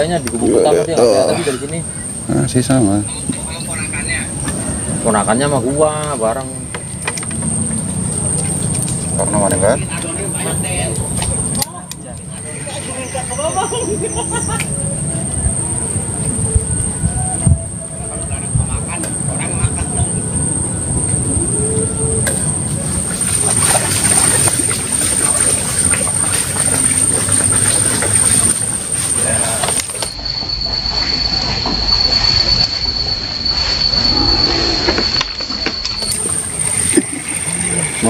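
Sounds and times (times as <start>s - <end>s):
high-pitched whine: 0.0s - 38.0s
outdoor background noise: 0.0s - 38.0s.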